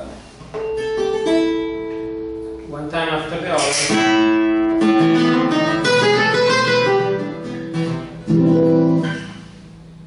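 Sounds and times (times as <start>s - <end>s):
guitar plucked slowly: 0.5s - 2.7s, 3.7s - 10.0s.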